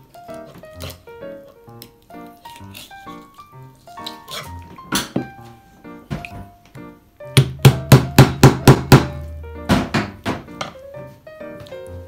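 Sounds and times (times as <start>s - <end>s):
background music: 0.0s - 12.0s
loud knocks: 7.4s - 10.8s.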